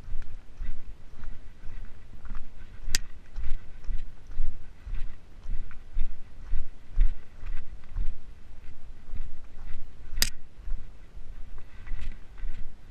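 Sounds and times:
footsteps crunching on trail: 0.0s - 12.9s
sharp click: 10.2s - 10.4s.

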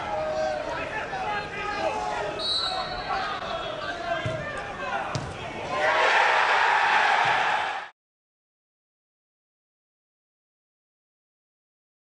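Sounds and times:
players shouting: 0.0s - 7.9s
referee's whistle blast: 2.4s - 3.2s
crowd cheering: 5.0s - 7.9s
ball being kicked: 5.1s - 5.4s.

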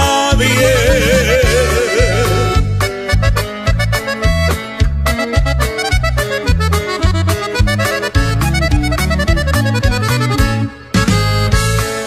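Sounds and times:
band music with wavering melody: 0.0s - 12.0s.

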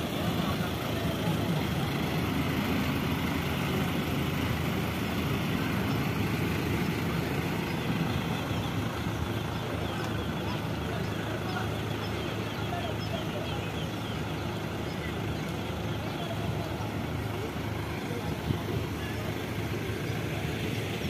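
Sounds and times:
traffic noise: 0.0s - 21.0s
trucks driving past: 0.0s - 21.0s.

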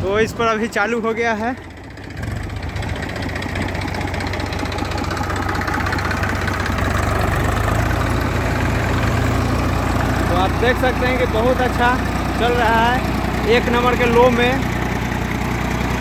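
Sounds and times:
diesel tractor engines under load: 0.0s - 16.0s
soil loader digging earth: 2.0s - 16.0s.

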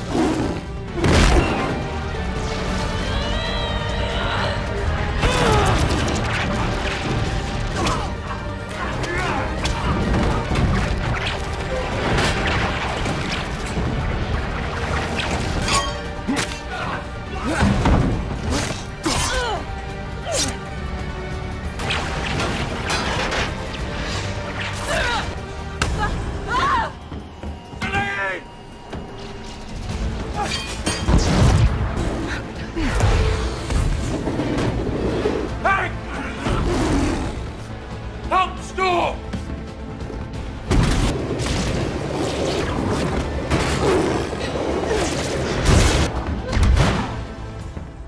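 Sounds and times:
film background score: 0.0s - 48.0s.

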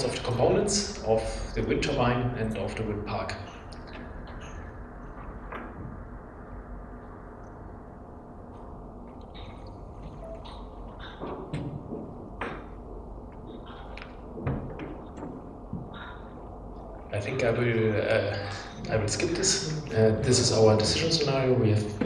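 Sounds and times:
steady low hum: 0.0s - 22.0s
faint knocks and clicks: 8.5s - 16.6s.

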